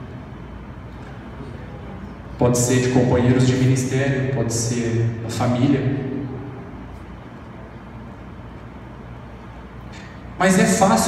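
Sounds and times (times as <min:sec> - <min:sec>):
steady low hum: 0:00.0 - 0:11.0
amplified speech echo: 0:01.4 - 0:06.8, 0:10.4 - 0:11.0.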